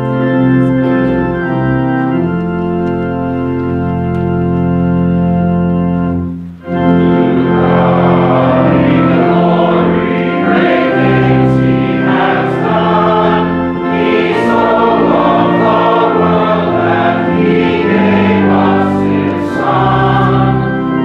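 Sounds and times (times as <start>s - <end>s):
congregation singing a hymn: 0.0s - 21.0s
organ chords: 0.0s - 21.0s.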